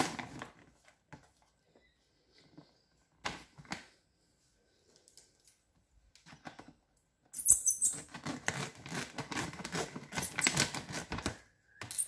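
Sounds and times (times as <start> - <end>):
scissors cutting plastic pouch: 8.0 - 11.4.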